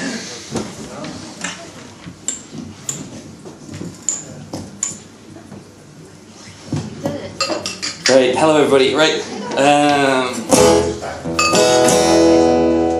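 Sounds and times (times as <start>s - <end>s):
low room murmur: 0.0s - 12.9s.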